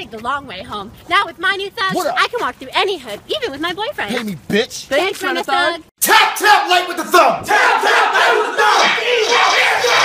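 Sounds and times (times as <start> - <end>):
people shouting and cheering: 6.0 - 10.0.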